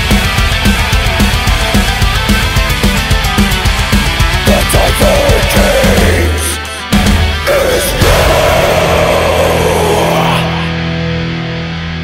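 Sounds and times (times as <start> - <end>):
distorted electric guitar sliding down: 0.0 - 12.0.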